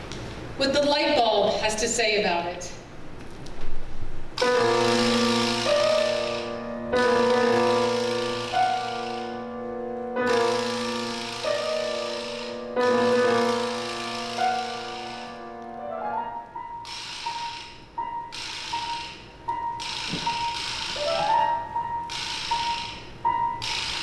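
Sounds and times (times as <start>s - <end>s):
chamber ensemble held chords: 4.4s - 16.8s.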